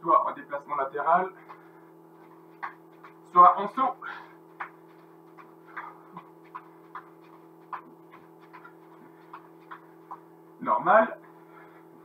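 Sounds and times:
steady electrical hum: 0.0 - 12.0
footfalls on exercise mat: 1.4 - 10.3.

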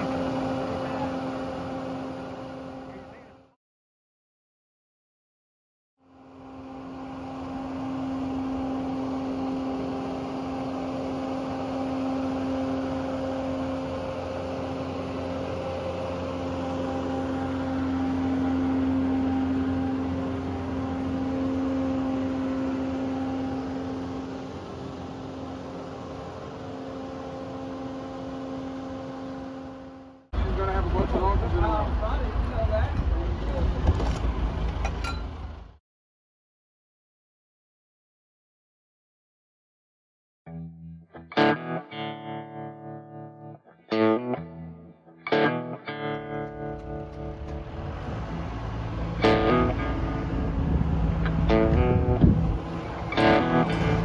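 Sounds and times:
travel lift engine and hydraulic hum: 0.0 - 3.4, 6.1 - 35.8, 46.1 - 54.0.

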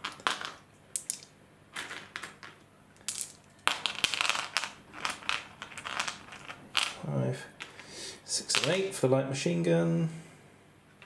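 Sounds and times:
dice clicking and rolling: 0.0 - 7.0, 8.5 - 8.8.

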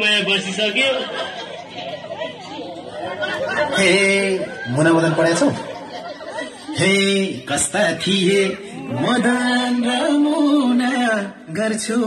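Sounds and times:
voices talking over one another: 0.0 - 11.8.

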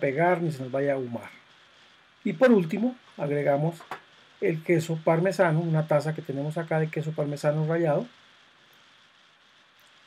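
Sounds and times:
low background hiss: 0.0 - 10.0
faint light ticks: 9.8 - 10.0.

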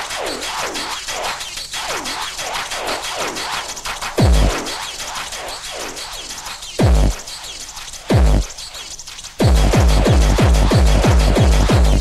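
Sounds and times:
electronic dance music: 4.2 - 4.9, 6.8 - 7.2, 9.4 - 12.0.

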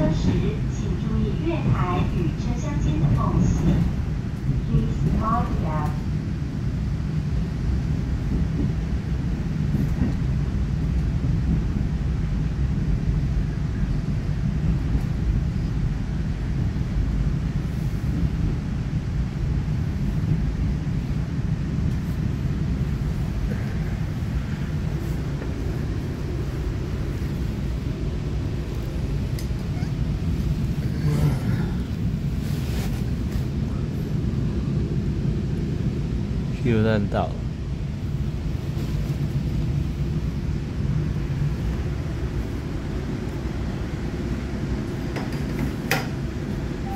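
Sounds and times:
train wheels rumbling: 0.0 - 46.9.

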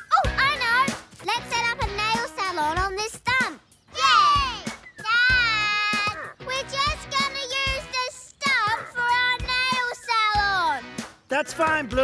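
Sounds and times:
background music: 0.0 - 12.0
child singing: 5.4 - 10.8.

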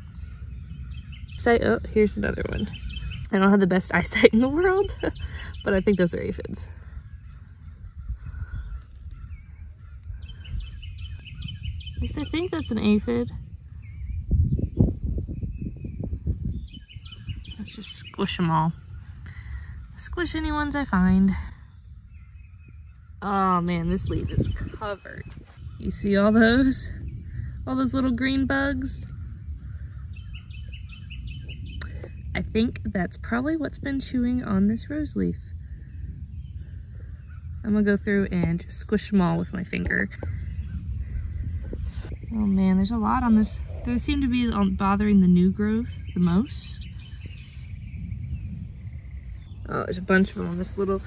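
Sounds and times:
bird chirping: 0.0 - 51.0
low rumble on microphone: 0.0 - 51.0.

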